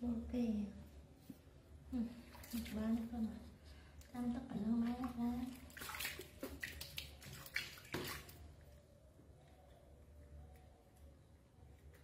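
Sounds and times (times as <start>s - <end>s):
water splashing in a plastic dipper: 2.2s - 3.4s, 4.0s - 8.5s.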